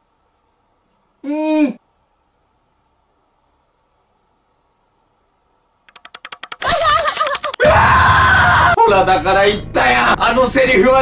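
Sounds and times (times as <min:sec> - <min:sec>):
fast clicks: 0:05.8 - 0:07.7
wavering cry and scream: 0:06.6 - 0:08.8.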